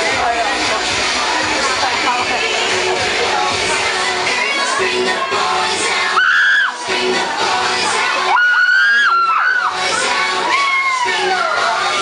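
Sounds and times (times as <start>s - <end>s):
loud pop dance music: 0.0s - 12.0s
audience screaming and cheering: 0.1s - 12.0s.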